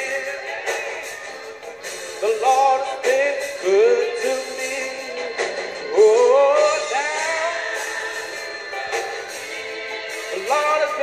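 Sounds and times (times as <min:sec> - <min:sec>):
man singing gospel: 0:00.0 - 0:01.1, 0:02.2 - 0:08.2, 0:10.1 - 0:11.0.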